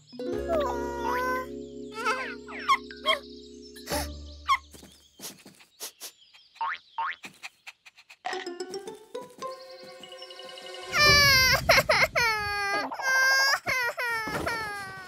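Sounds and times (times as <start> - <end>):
cartoon music: 0.0 - 4.7, 8.3 - 12.0.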